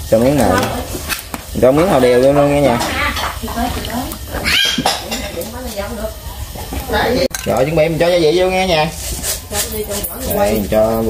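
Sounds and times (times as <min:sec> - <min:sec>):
voices murmuring: 0:00.0 - 0:11.0.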